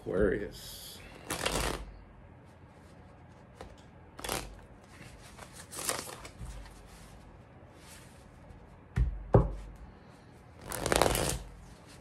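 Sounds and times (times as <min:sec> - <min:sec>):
cards being shuffled: 0:01.2 - 0:01.9, 0:03.3 - 0:07.2, 0:10.6 - 0:12.0.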